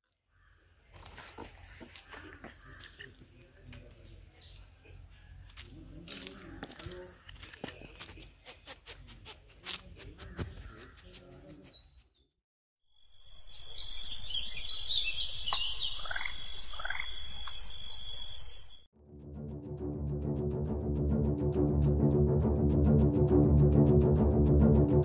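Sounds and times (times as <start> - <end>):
bird calls: 10.0 - 12.2, 13.3 - 18.9.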